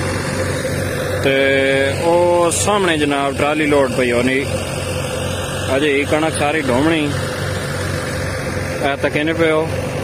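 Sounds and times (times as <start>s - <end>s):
loud held pitched tone: 0.0s - 10.0s
tractor diesel engine running: 0.0s - 10.0s.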